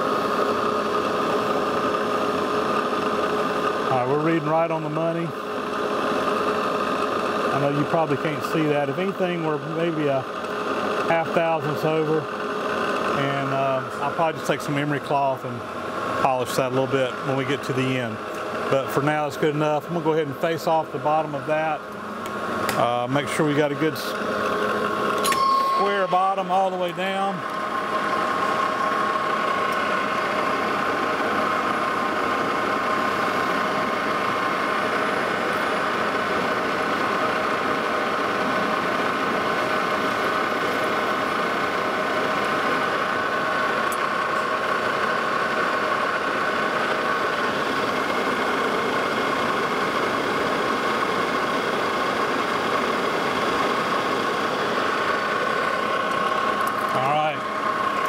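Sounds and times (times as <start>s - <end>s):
lathe cutting steel: 20.9s - 58.0s.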